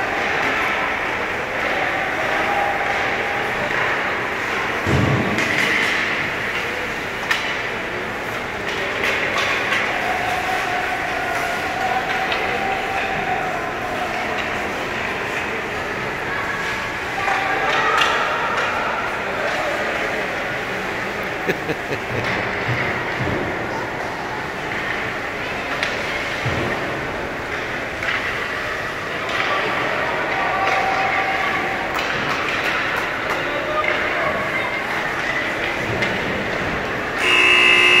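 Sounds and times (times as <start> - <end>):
ice rink ambience: 0.0 - 38.0
loud buzzer tone: 37.2 - 38.0.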